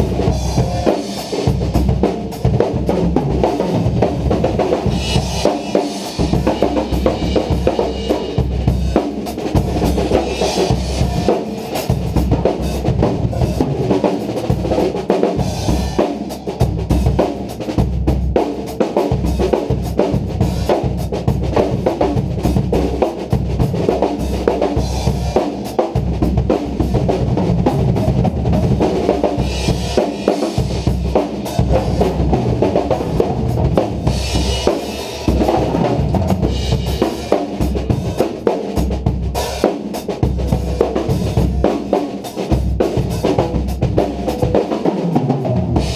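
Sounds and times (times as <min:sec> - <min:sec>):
drum kits playing groove: 0:00.0 - 0:45.9.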